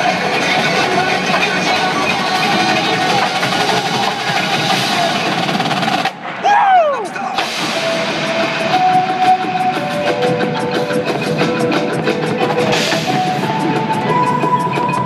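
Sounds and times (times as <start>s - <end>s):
marching band playing: 0.0s - 6.2s, 7.4s - 15.0s
rapid drum and percussion ticks: 0.0s - 6.2s, 7.4s - 15.0s.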